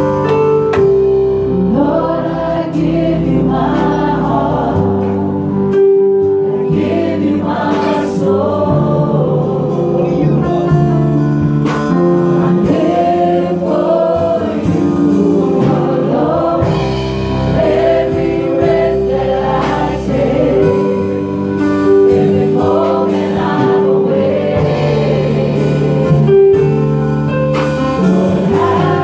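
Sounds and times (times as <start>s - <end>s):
instrumental accompaniment with light beat: 0.0s - 29.0s
group singing a worship song: 0.8s - 29.0s.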